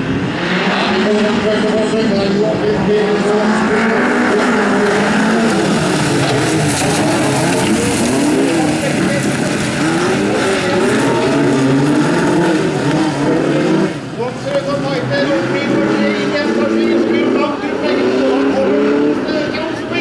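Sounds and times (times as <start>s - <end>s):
racing car engines revving: 0.0s - 20.0s.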